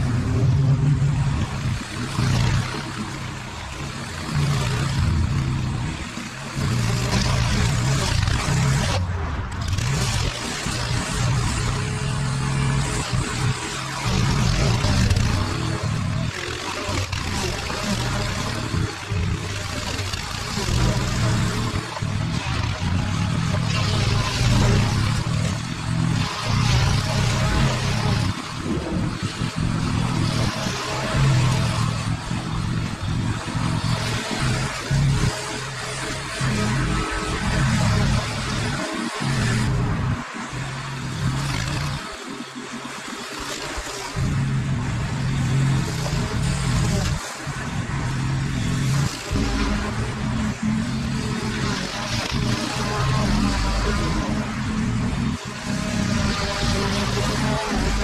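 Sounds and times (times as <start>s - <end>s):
lawn mower engine running: 0.0s - 58.0s.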